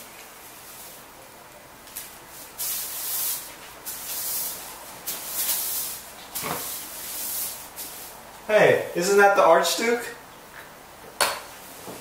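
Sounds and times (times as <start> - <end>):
broom sweeping a floor: 0.0 - 8.5, 11.5 - 12.0.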